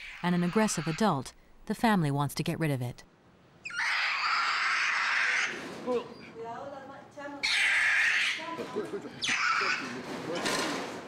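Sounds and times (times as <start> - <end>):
monkey screaming: 0.0 - 1.1, 3.6 - 5.6, 7.4 - 8.6, 9.2 - 10.0.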